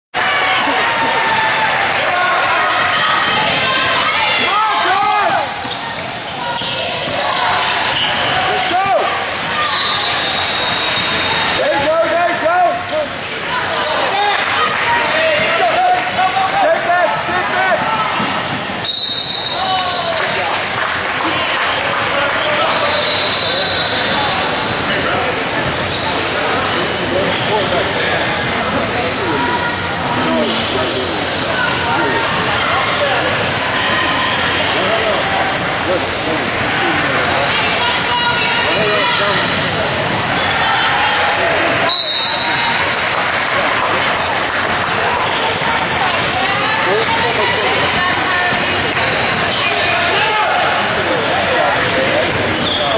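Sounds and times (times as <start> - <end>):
voices echoing in a gym: 0.1 - 52.9
sneakers squeaking: 5.1 - 11.6, 22.4 - 28.9, 29.7 - 35.7, 36.4 - 40.6, 44.8 - 50.0, 51.2 - 52.9
short high whistle: 18.8 - 19.7.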